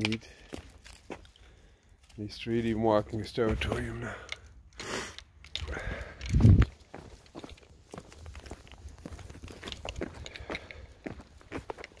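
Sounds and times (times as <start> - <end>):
footsteps on block paving: 0.0 - 4.3, 5.8 - 12.0.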